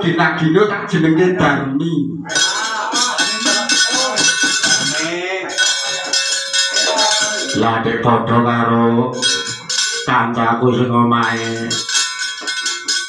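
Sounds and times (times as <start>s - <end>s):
metal plates clattering and ringing: 2.3s - 7.6s, 9.2s - 10.1s, 11.2s - 13.0s
man's low voice: 6.9s - 11.8s.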